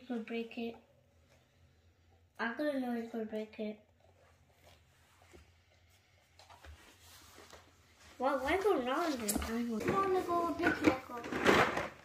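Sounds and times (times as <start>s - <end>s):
faint clicks and rustles: 3.8s - 12.0s.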